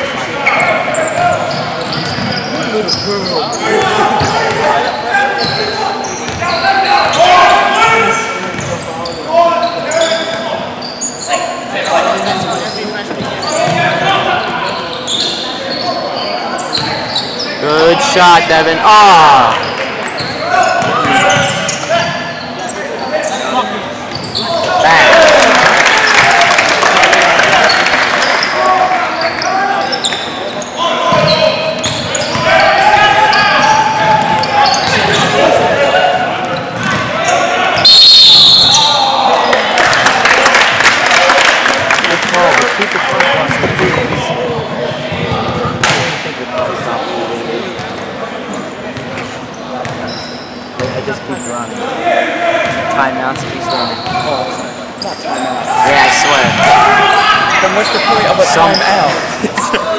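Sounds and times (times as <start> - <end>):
voices echoing in gym: 0.0 - 59.9
shrill whistle blast: 37.8 - 39.0.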